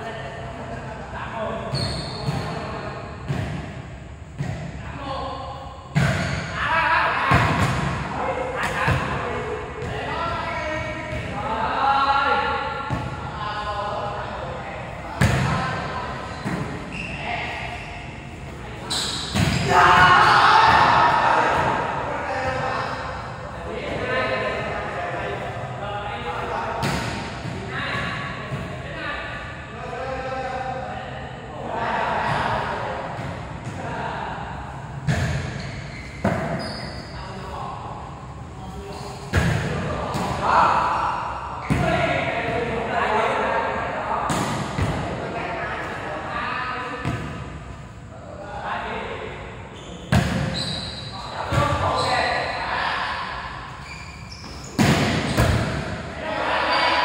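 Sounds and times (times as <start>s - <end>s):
volleyball hits echoing: 5.9s - 6.6s, 19.1s - 22.6s, 26.7s - 28.8s, 35.0s - 35.6s, 54.7s - 56.2s
players shouting: 19.5s - 22.5s.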